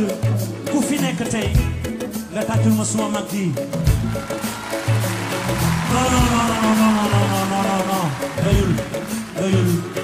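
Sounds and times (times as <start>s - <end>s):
bass: 0.0s - 10.0s
drums: 0.0s - 10.0s.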